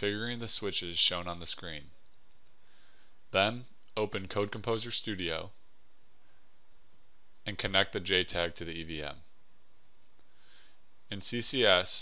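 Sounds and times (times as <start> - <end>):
man speaking: 0.0 - 2.0, 3.3 - 5.6, 7.4 - 9.3, 11.1 - 12.0
quiet breath: 2.4 - 3.3, 6.1 - 6.7, 10.2 - 11.0.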